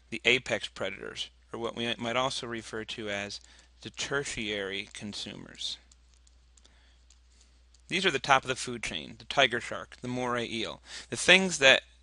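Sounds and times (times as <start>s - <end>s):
man speaking: 0.1s - 5.9s, 7.9s - 11.9s
stylus clicking on drawing tablet: 5.8s - 8.0s.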